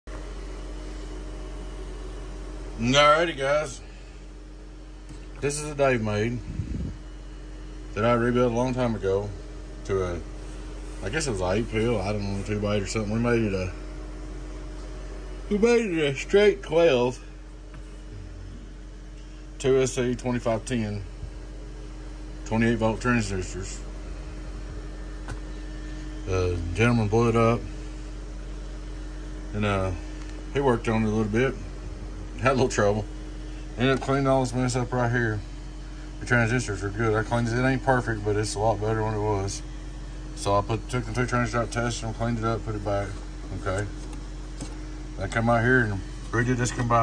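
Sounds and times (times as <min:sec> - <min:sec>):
steady hum and hiss: 0:00.1 - 0:47.0.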